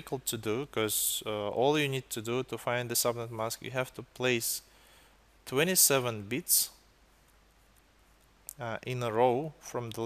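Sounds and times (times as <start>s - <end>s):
man talking: 0.0s - 4.7s, 5.4s - 6.8s, 8.5s - 10.0s.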